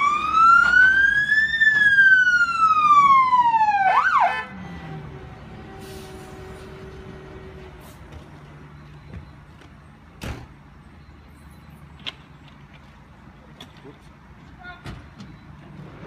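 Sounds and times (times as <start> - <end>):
vehicle engines rumbling: 0.0 - 16.0.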